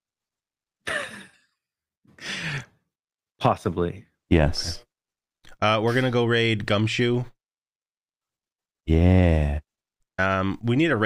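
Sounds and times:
person sighing: 2.2 - 2.8.

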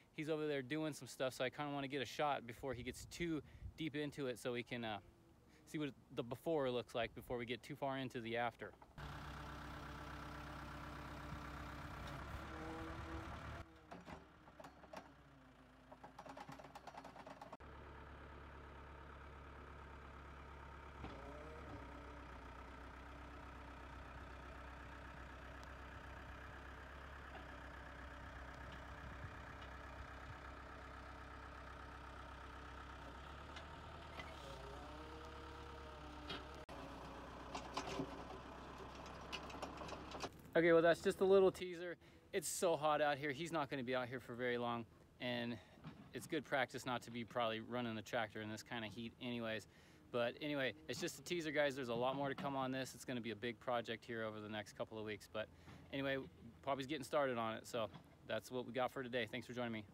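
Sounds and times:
diesel engine running faintly: 0.0 - 59.9.

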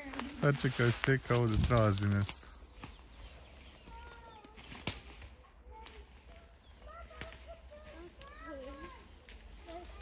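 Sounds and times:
twigs snapping: 0.0 - 6.2, 7.1 - 7.6, 8.2 - 10.0
dry leaves and twigs crackling: 0.0 - 10.0.

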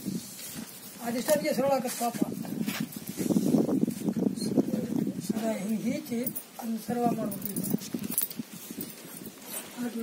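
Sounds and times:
light clicks and jingly rustles: 5.6 - 10.0
person speaking: 9.6 - 10.0.

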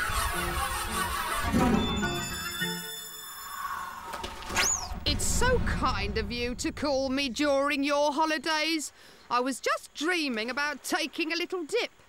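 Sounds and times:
cartoon whistling swoop: 1.5 - 5.1.

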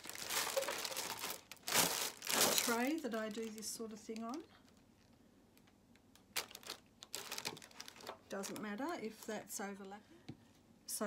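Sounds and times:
aluminium foil tray crinkling: 0.0 - 4.5, 6.2 - 9.0.

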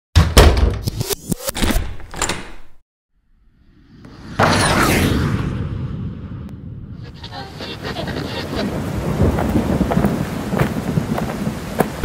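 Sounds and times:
low rumble: 3.3 - 7.2.

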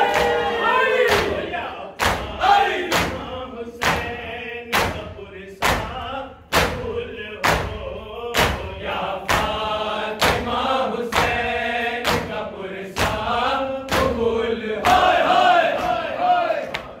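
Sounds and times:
men chanting in unison: 0.0 - 17.0
hands slapping chests: 12.0 - 12.4.

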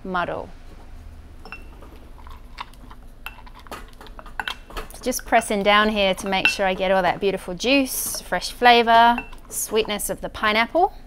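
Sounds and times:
ringing glass clink: 1.5 - 1.8.

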